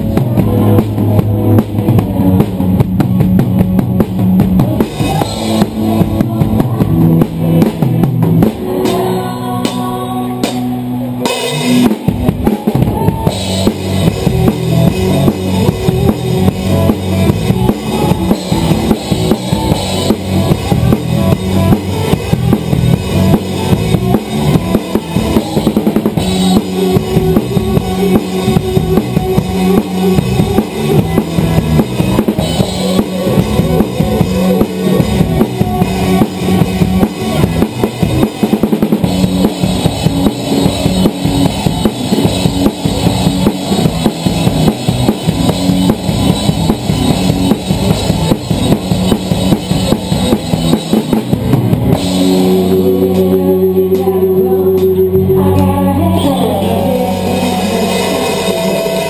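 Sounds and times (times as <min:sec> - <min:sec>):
live band with bass guitar: 0:00.0 - 0:59.0
rock drum kit played hard: 0:00.0 - 0:59.0.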